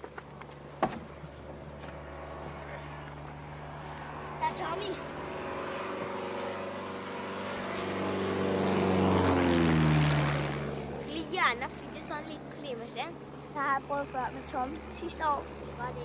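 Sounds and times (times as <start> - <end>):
propeller aircraft flying overhead: 0.0 - 16.0.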